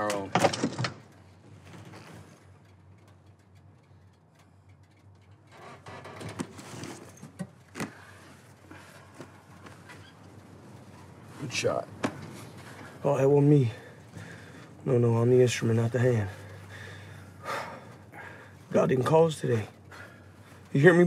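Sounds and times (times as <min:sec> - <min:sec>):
soft rustling: 0:06.5 - 0:21.0.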